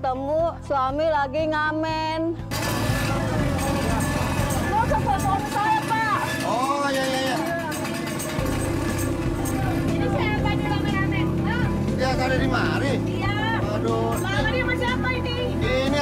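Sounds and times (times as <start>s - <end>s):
traffic noise: 2.5s - 16.0s
people talking: 3.1s - 8.2s, 9.4s - 16.0s.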